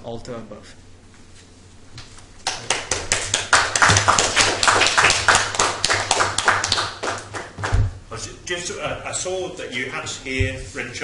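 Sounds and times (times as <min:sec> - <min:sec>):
small group applauding: 0:02.4 - 0:07.8.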